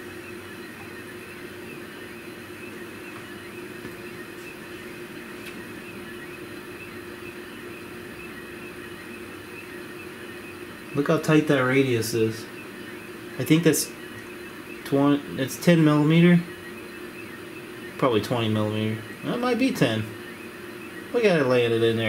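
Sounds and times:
stepper motors humming: 0:00.0 - 0:22.0.

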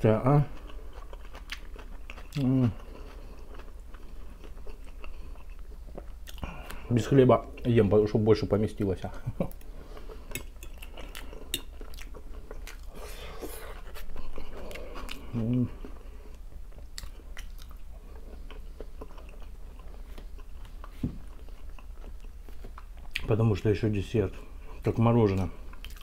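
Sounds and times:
chewing and biting food: 0:00.5 - 0:06.8, 0:09.5 - 0:23.3, 0:25.7 - 0:26.0.

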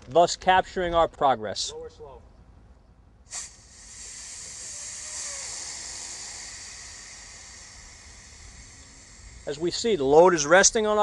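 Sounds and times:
air hissing from airbag: 0:03.3 - 0:11.0.

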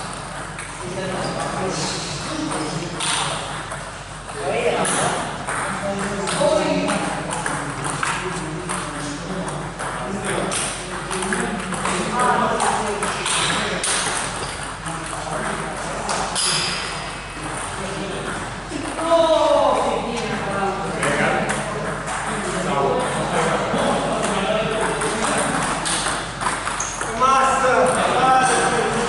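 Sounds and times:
people's voices in a hall: 0:00.0 - 0:29.0
table tennis ball clicks: 0:24.2 - 0:27.2.

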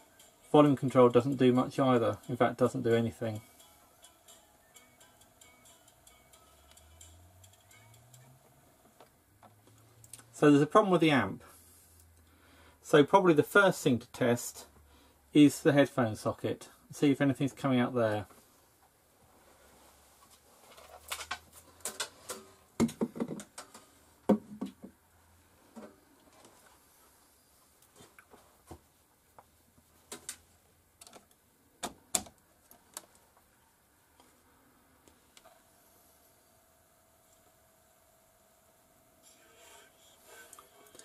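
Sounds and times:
faint steady tone: 0:00.0 - 0:10.4, 0:33.2 - 0:41.0.

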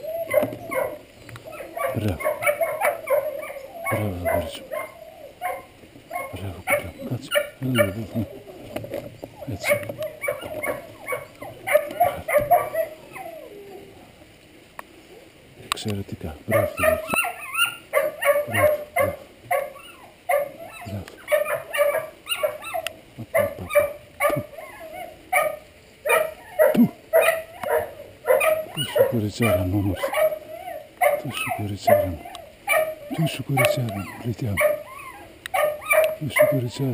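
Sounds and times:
dog whining and yelping: 0:00.0 - 0:08.8, 0:09.4 - 0:14.0, 0:16.6 - 0:36.9.

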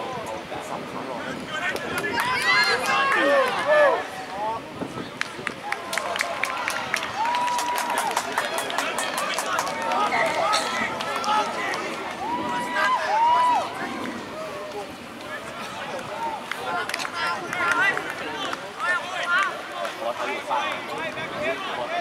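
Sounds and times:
people shouting: 0:02.1 - 0:04.3, 0:09.8 - 0:14.6.

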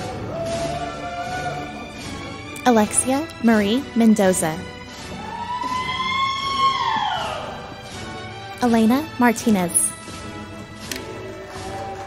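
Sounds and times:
high-pitched whoop: 0:00.0 - 0:01.7, 0:05.2 - 0:07.6.

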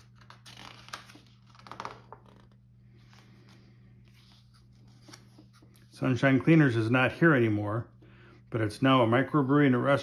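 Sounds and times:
page flipping over: 0:00.0 - 0:05.9
paper pages rustling: 0:00.0 - 0:05.9.

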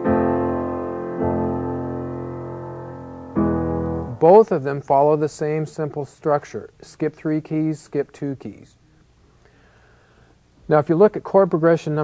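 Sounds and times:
piano chord: 0:00.0 - 0:04.4.

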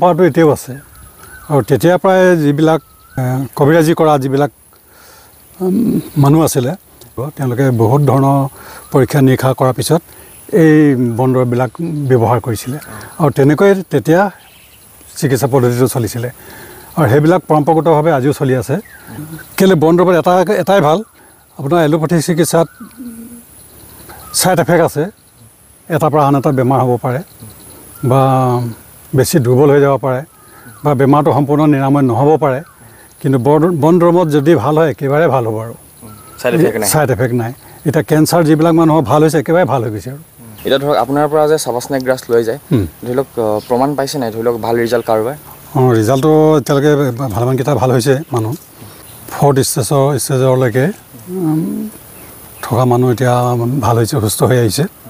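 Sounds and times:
man speaking: 0:00.0 - 0:00.8, 0:01.5 - 0:04.6, 0:05.6 - 0:14.4, 0:15.1 - 0:16.4, 0:17.0 - 0:22.8, 0:24.2 - 0:25.2, 0:25.9 - 0:48.6, 0:49.3 - 0:51.3, 0:52.6 - 0:55.0
dove cooing: 0:05.6 - 0:06.3, 0:19.0 - 0:19.6, 0:22.6 - 0:24.4, 0:36.0 - 0:37.0, 0:51.1 - 0:52.1
quiet voiced sound: 0:05.6 - 0:06.3, 0:19.1 - 0:19.6, 0:22.6 - 0:23.5, 0:40.4 - 0:41.0, 0:51.1 - 0:52.0.

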